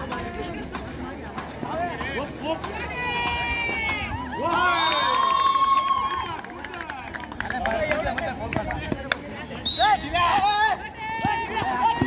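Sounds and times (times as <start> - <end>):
players shouting: 9.8 - 12.0.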